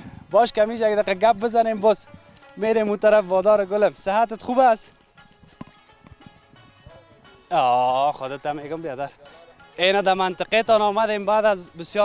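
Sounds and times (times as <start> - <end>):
faint background music: 0.0 - 12.0
footsteps on loose soil: 1.6 - 3.6, 4.5 - 7.4.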